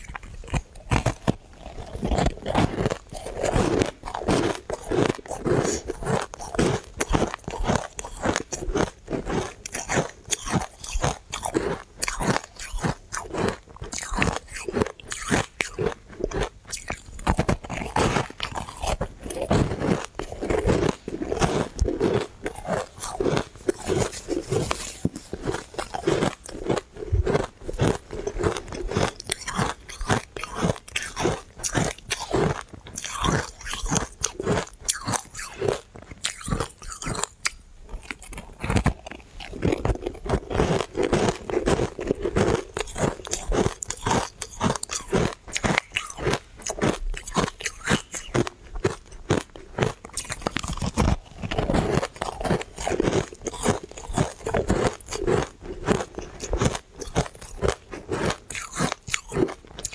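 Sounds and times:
ice crunching while chewed: 0:00.0 - 0:59.9.

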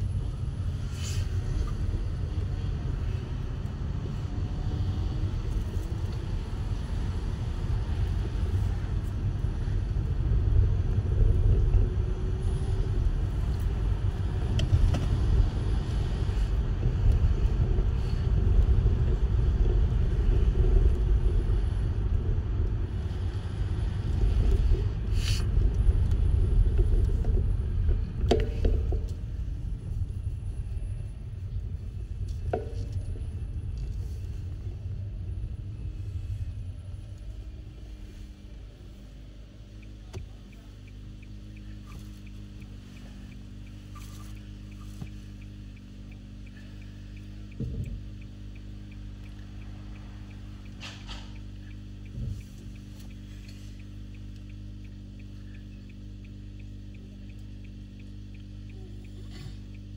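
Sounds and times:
car road and engine rumble: 0:00.0 - 0:59.9.

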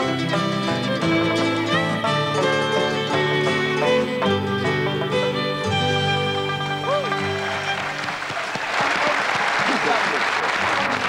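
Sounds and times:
audience applauding: 0:06.2 - 0:11.0
voices: 0:06.2 - 0:11.0.

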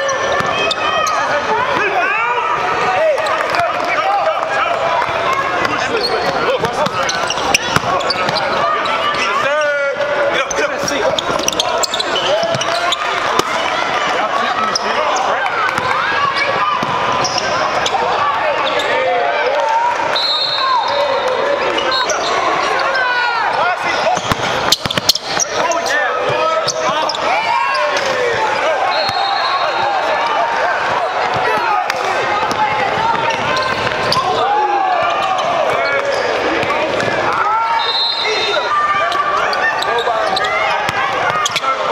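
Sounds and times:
people calling and talking: 0:00.0 - 0:41.9
sneakers squeaking on court: 0:05.4 - 0:09.5, 0:10.3 - 0:13.5, 0:14.6 - 0:19.0, 0:20.8 - 0:29.9, 0:32.2 - 0:41.9.

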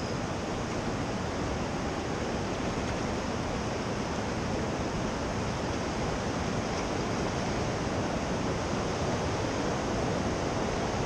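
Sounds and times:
river water rushing: 0:00.0 - 0:11.0.

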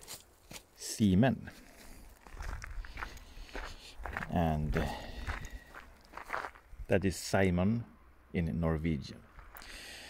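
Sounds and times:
footsteps on gravel: 0:01.4 - 0:06.9.

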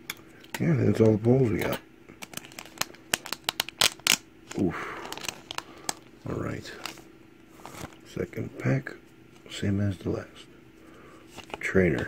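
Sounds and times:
foil wrapper crinkling: 0:02.2 - 0:08.2.

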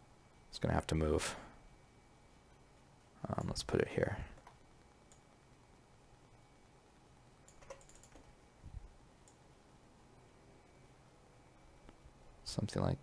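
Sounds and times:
computer keyboard and mouse clicks: 0:07.4 - 0:08.3.

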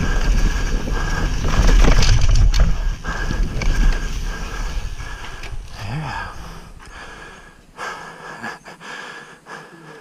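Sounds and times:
wind noise on camera: 0:00.0 - 0:05.8
bike rolling over dirt trail: 0:00.0 - 0:07.2
rider breathing: 0:00.0 - 0:10.0.

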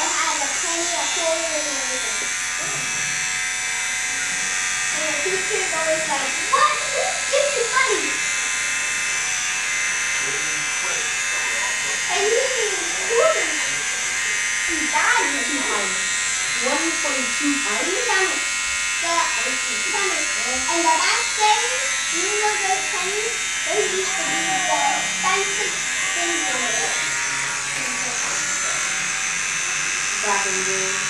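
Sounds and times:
electric hair clippers buzzing: 0:00.0 - 0:31.0.

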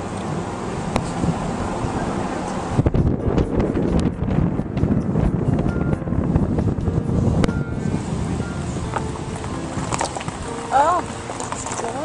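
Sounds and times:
wind buffeting microphone: 0:00.0 - 0:12.0
faint music: 0:00.2 - 0:12.0.

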